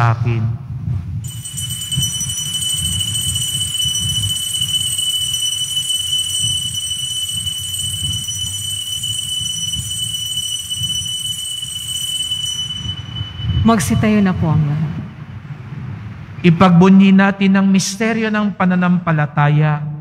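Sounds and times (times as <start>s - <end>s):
altar bells ringing: 1.2s - 15.2s.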